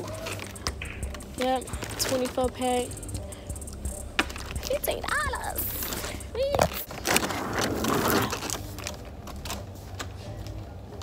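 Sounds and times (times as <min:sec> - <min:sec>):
low store hum: 0:00.0 - 0:11.0
clattering and rustling handling: 0:05.8 - 0:11.0.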